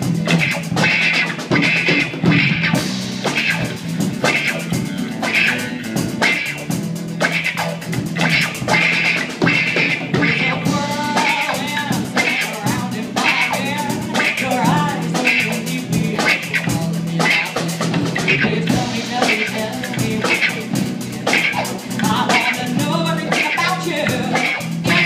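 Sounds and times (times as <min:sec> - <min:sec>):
bass guitar: 0:00.0 - 0:25.0
drum kit beat: 0:00.0 - 0:25.0
electric guitar: 0:00.0 - 0:25.0
women singing: 0:10.2 - 0:25.0.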